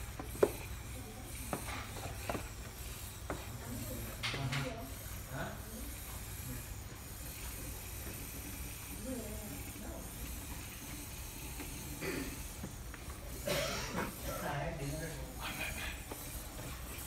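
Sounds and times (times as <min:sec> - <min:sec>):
faint voices talking: 0:00.0 - 0:17.0.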